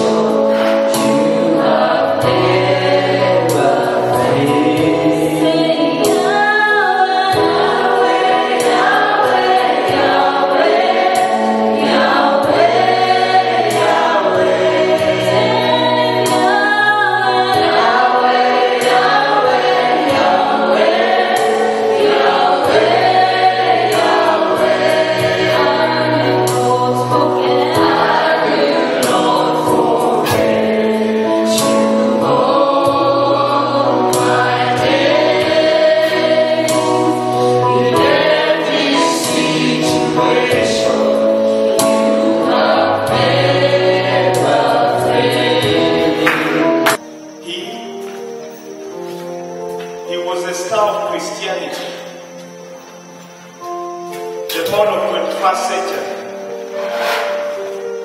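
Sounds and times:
group singing gospel song: 0.0s - 47.6s, 54.5s - 58.0s
instrumental accompaniment: 0.0s - 58.0s.

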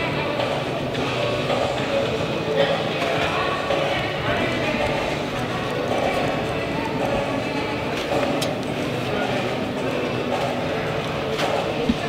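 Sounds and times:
indistinct voices: 0.0s - 12.0s
music: 0.0s - 12.0s.

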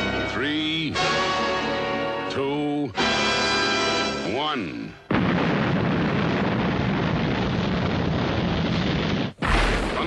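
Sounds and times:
deep boom: 5.1s - 8.6s, 9.4s - 10.0s
dense rush of blast noise: 5.1s - 10.0s.

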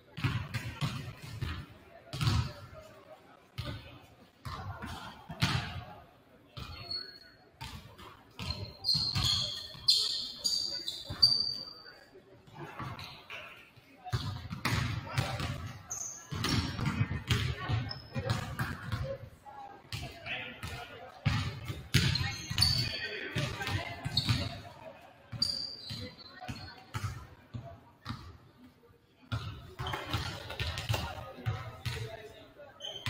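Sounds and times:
voices chatting: 1.7s - 33.0s
basketballs bouncing on hardwood floor: 16.3s - 19.1s.

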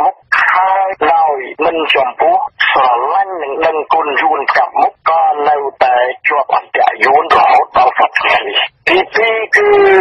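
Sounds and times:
person reading the news: 0.0s - 10.0s.

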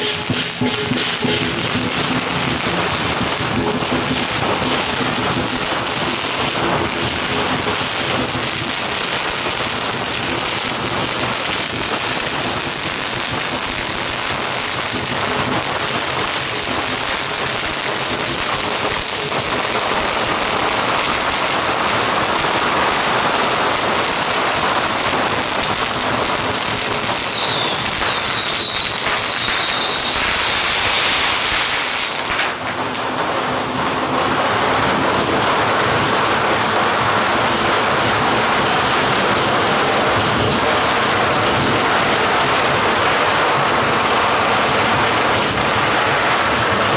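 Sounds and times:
firecrackers crackling: 0.0s - 46.9s.

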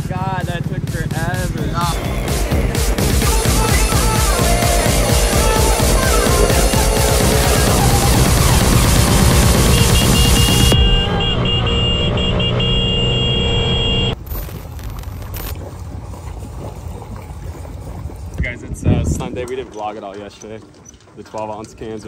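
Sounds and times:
background music: 0.0s - 11.5s
moped riding noise: 0.0s - 22.0s.

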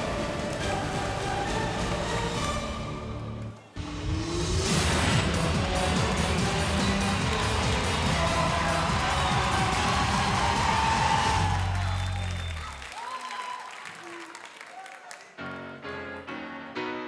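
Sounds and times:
audience applause and cheering: 0.0s - 15.7s
loud music with heavy bass: 3.8s - 11.8s.

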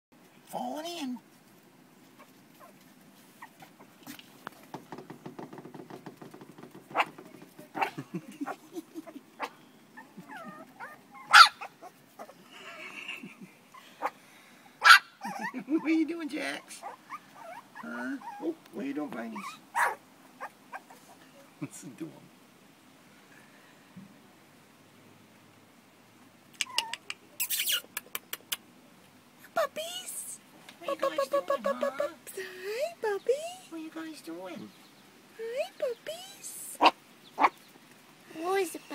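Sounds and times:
puppy claws pattering on boards: 4.0s - 7.8s
puppy yipping: 6.9s - 7.2s, 7.8s - 8.6s, 9.4s - 12.4s, 14.8s - 15.6s, 16.8s - 18.6s, 19.3s - 21.1s, 26.6s - 28.5s, 36.8s - 37.6s
puppies whimpering: 8.5s - 12.4s, 15.2s - 15.9s, 16.6s - 18.6s, 19.3s - 21.0s, 26.6s - 27.0s.

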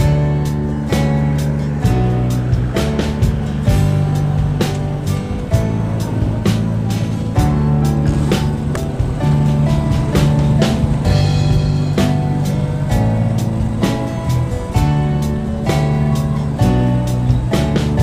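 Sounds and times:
background music with steady beat: 0.0s - 18.0s.

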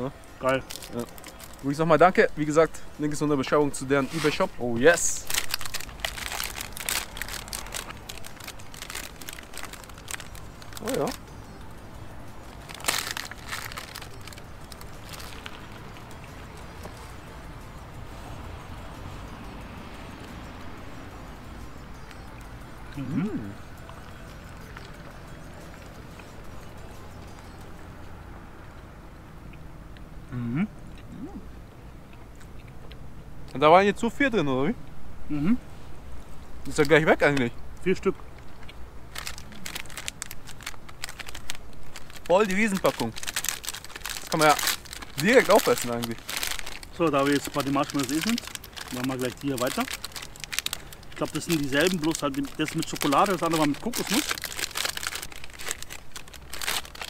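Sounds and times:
low outdoor rumble and hiss: 0.0s - 57.0s
plastic wrapper crinkling: 0.5s - 1.8s, 4.1s - 11.2s, 12.6s - 16.1s, 39.1s - 57.0s.

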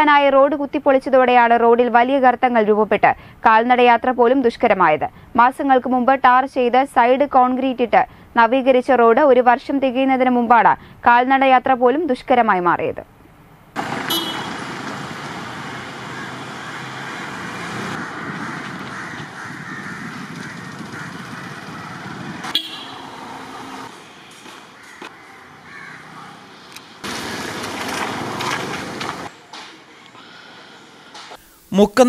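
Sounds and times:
street ambience: 0.0s - 31.5s
road traffic passing: 13.1s - 31.4s.

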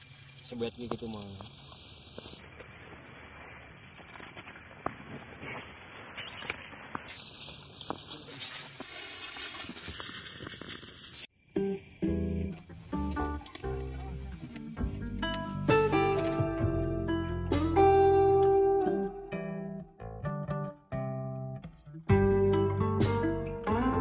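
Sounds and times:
plastic packaging crinkling: 0.0s - 11.3s
acoustic guitar music: 11.5s - 24.0s.

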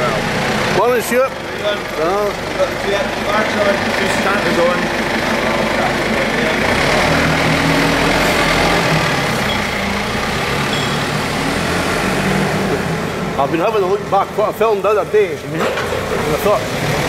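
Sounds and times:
forklift engine running: 0.0s - 17.0s.

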